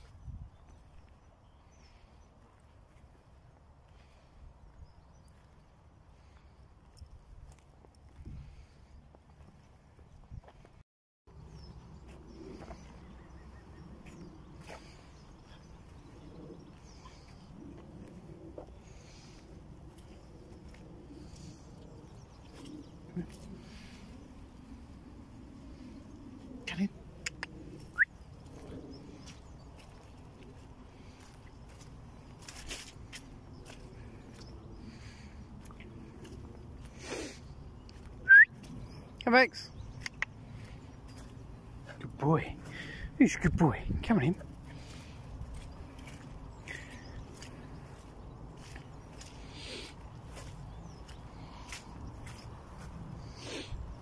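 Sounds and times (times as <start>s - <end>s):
wind rumble on microphone: 0.0s - 2.2s, 2.9s - 10.8s, 11.4s - 42.0s, 42.6s - 54.0s
footsteps on grass: 28.4s - 38.9s, 44.3s - 53.7s.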